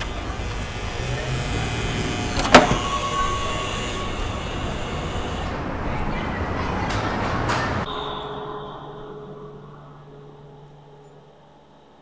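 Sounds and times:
thin high whine: 0.0s - 5.6s, 7.9s - 12.0s
truck engine rumbling: 0.0s - 12.0s.

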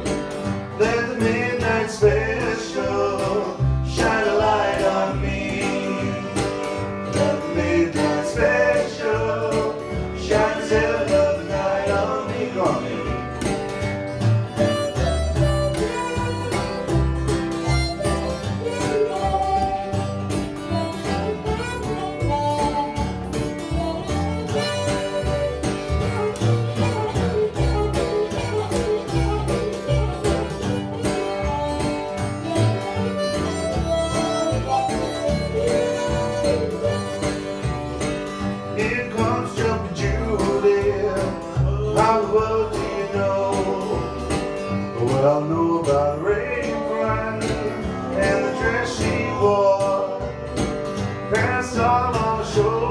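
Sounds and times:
harmonica lead: 0.0s - 41.6s
plucked double bass: 0.0s - 52.9s
strummed acoustic guitar: 0.0s - 52.9s.

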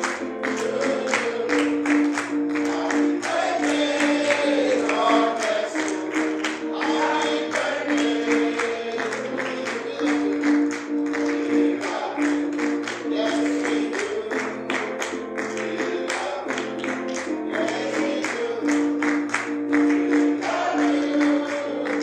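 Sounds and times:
organ sustained chords: 0.0s - 22.0s
people singing: 0.0s - 22.0s.

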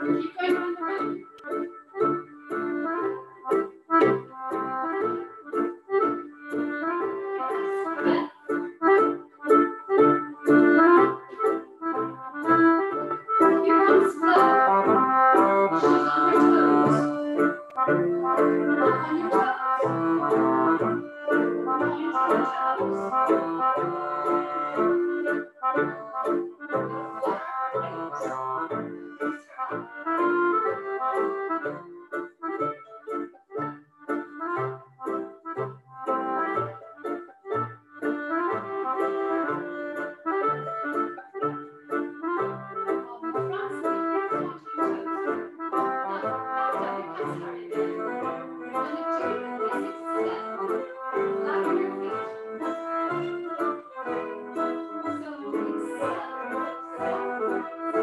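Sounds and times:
accordion-led dance band: 0.0s - 58.0s.

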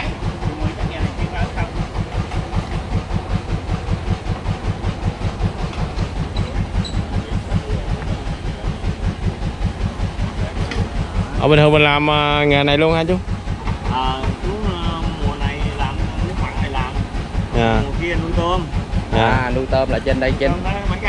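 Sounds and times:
engine running with thudding beat: 0.0s - 21.0s.

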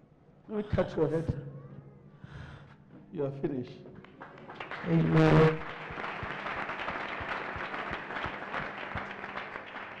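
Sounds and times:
congregation applauding: 4.0s - 10.0s.

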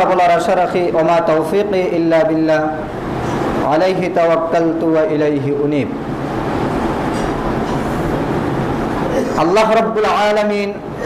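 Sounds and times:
lecturer speaking: 0.0s - 3.0s, 3.6s - 6.0s, 9.2s - 11.0s
loud rushing hiss and rumble: 0.0s - 11.0s.

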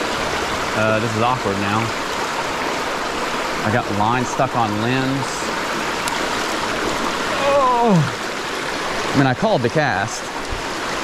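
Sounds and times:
creek running over rocks: 0.0s - 11.0s.

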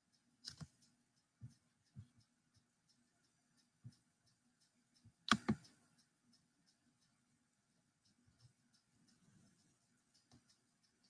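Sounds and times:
sharp clicks: 0.2s - 7.2s.

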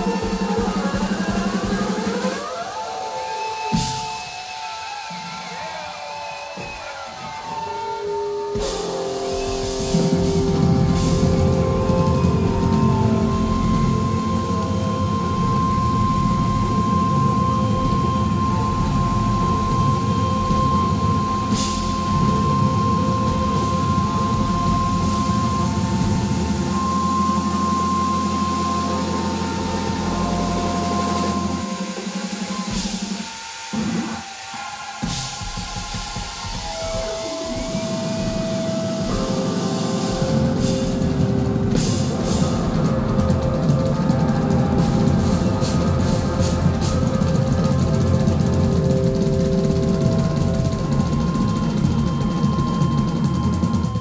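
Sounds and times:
bass: 0.0s - 2.5s, 8.5s - 34.2s, 35.0s - 54.0s
drum kit: 0.0s - 54.0s
electric guitar: 0.0s - 54.0s
synthesizer held notes: 0.0s - 54.0s.

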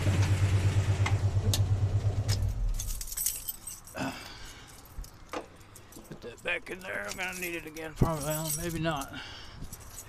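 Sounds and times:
handling rustling noise: 2.7s - 10.0s.

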